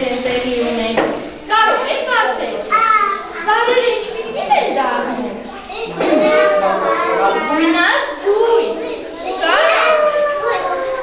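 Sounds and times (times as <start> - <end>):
young children talking: 0.0 - 11.0.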